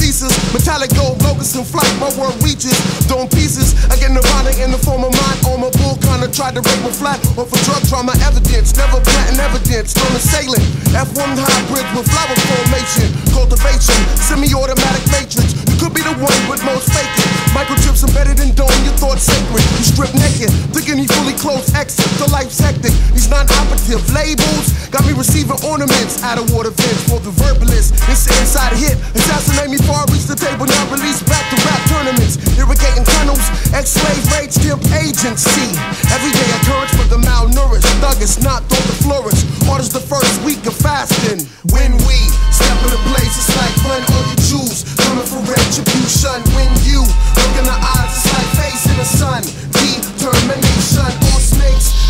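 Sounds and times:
rapping over a beat: 0.0s - 52.0s
long deep bass note: 41.7s - 44.4s, 46.4s - 49.1s, 51.2s - 52.0s.

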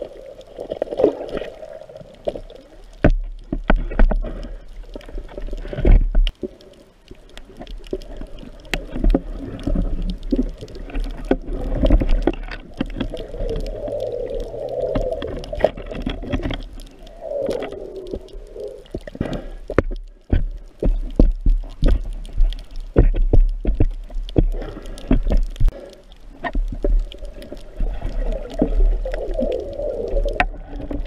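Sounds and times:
water gurgling: 0.0s - 31.0s
muffled underwater noise: 3.8s - 23.2s, 23.8s - 31.0s
sharp clicks and knocks: 19.0s - 25.8s.

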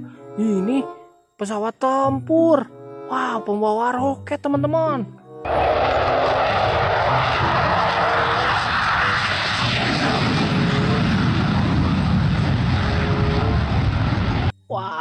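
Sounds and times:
jet engine on afterburner: 5.5s - 14.5s.

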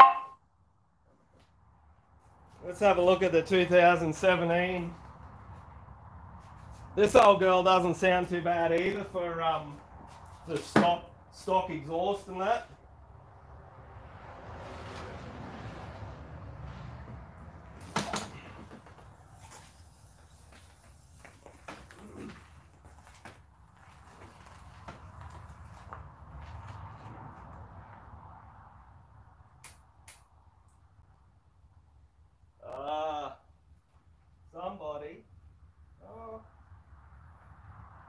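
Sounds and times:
tyres rolling over gravel: 14.7s - 27.7s.

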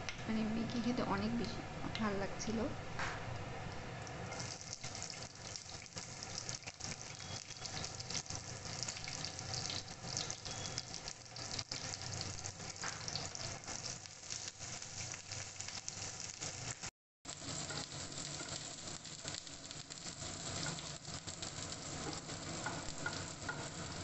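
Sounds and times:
onions sizzling in a frying pan: 4.0s - 24.0s.

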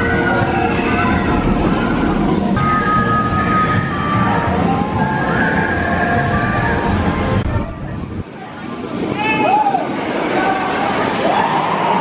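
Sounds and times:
steady high tone: 0.0s - 7.5s
roller coaster wheels rumbling: 0.0s - 12.0s.

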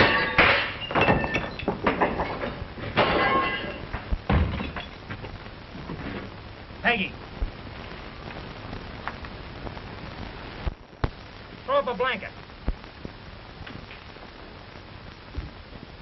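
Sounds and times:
knocks and crashes: 0.0s - 6.3s.

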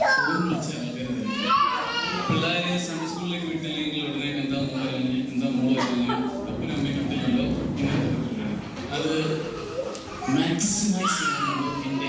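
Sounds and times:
high child-like voice: 0.0s - 0.4s
people talking: 0.0s - 12.0s.

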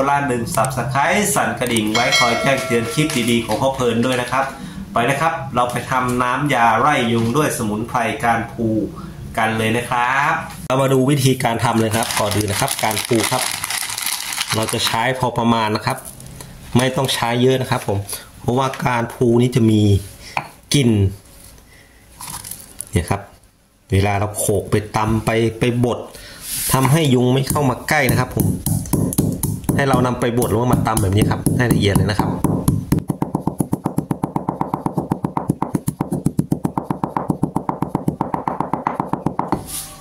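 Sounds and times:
stone pestle knocking mortar: 28.0s - 39.6s.

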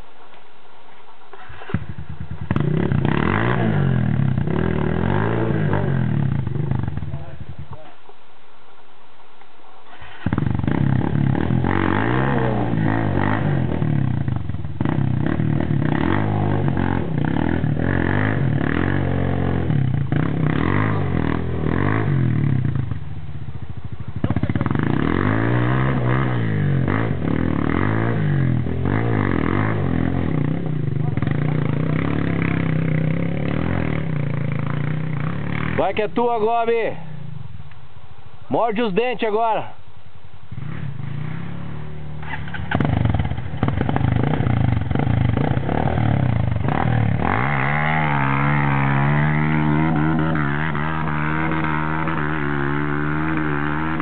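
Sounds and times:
motorcycle engine revving: 1.3s - 7.8s, 9.9s - 37.6s, 40.5s - 54.0s.

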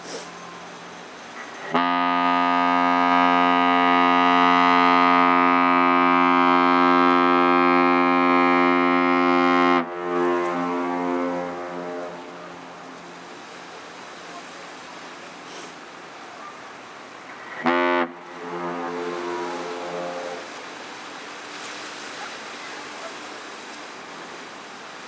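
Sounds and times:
ship's horn blast: 1.4s - 13.6s, 17.3s - 24.5s.

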